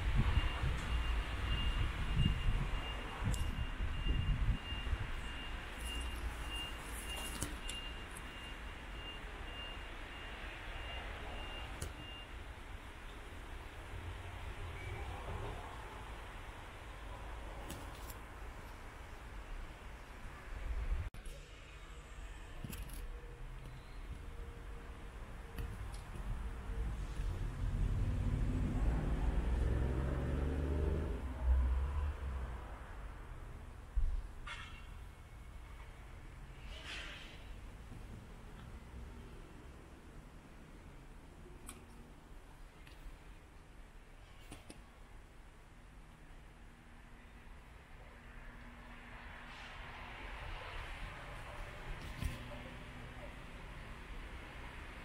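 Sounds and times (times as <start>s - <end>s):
vehicle reversing alarm beeping: 0.0s - 12.5s
passing motor vehicle rumble: 26.2s - 33.6s.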